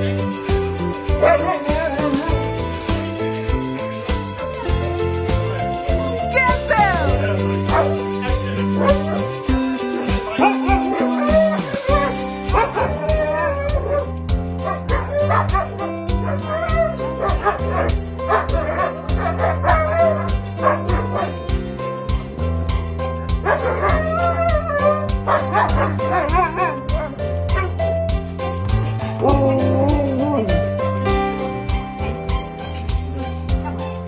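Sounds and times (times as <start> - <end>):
background music with steady beat: 0.0 - 34.0
dogs howling and whining: 0.3 - 3.0, 8.6 - 21.6, 23.4 - 27.9.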